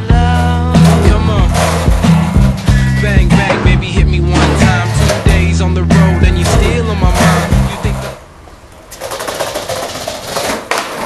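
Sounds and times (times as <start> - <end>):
skateboard wheels rolling: 0.0 - 11.0
skateboard clack: 0.4 - 11.0.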